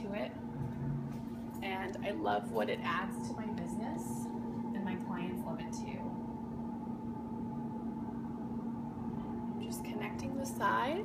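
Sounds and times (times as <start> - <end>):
two-tone background hum: 0.0 - 11.0.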